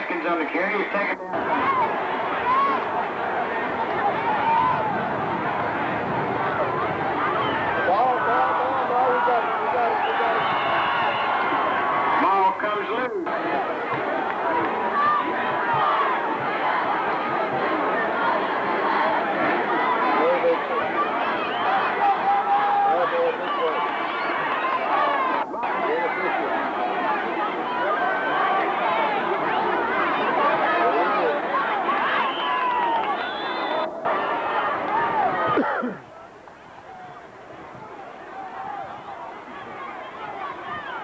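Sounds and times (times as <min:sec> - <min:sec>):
stadium crowd din: 0:00.0 - 0:41.0.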